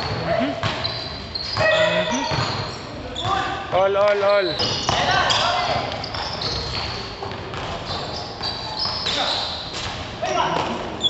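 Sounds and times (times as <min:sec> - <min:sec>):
basketball bouncing on court: 0:00.0 - 0:10.8
sneakers squeaking: 0:00.0 - 0:11.0
players calling out: 0:00.4 - 0:07.0.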